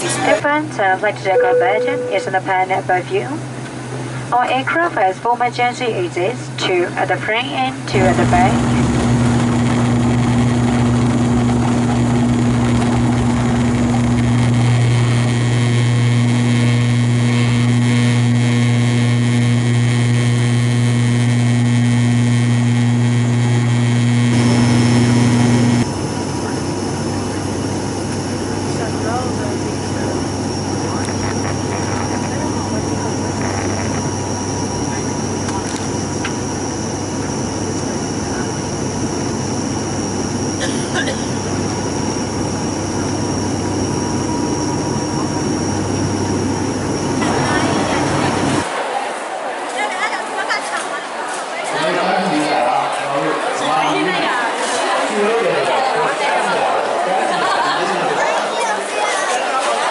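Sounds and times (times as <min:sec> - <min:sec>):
thin high whine: 0:00.0 - 0:04.9, 0:07.8 - 0:49.2
propeller drone: 0:00.0 - 0:49.0.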